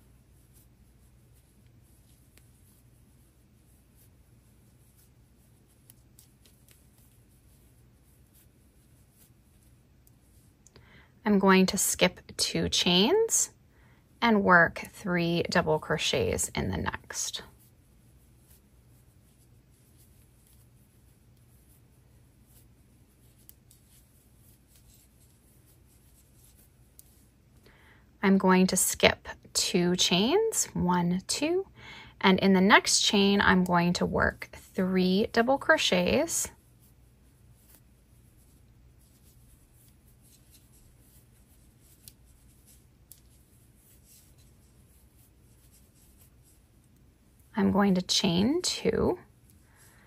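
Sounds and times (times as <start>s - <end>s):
yarn rustling: 0.0s - 10.7s, 14.2s - 27.6s, 32.6s - 50.0s.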